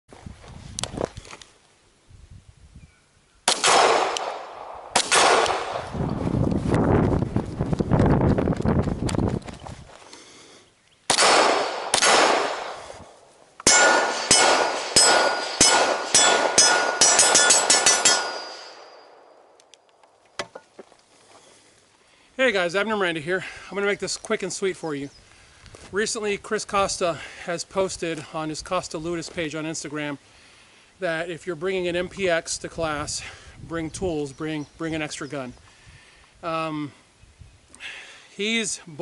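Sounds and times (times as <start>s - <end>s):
pistol shots: 3.5s - 5.9s, 11.1s - 12.9s, 13.6s - 19.6s
steel plates ringing: 13.7s - 19.2s.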